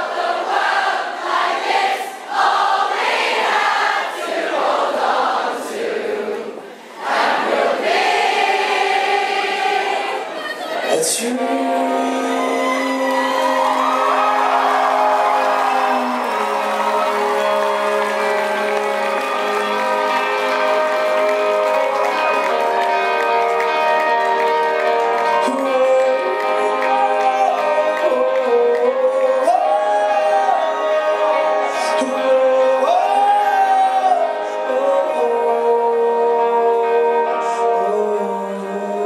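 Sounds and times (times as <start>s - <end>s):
crowd singing: 0.0s - 22.9s, 24.9s - 39.0s
crowd cheering: 7.0s - 11.3s, 12.0s - 34.3s
lead singer singing: 8.1s - 20.5s, 25.1s - 39.0s.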